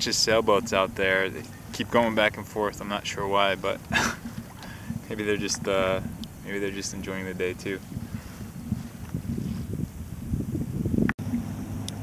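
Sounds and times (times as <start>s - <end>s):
water sloshing around kayak: 0.0s - 10.2s
wind buffeting microphone: 0.0s - 12.0s.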